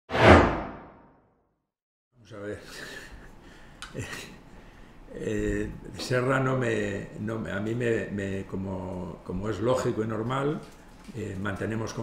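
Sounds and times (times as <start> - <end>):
whoosh with deep low end: 0.1 - 1.1.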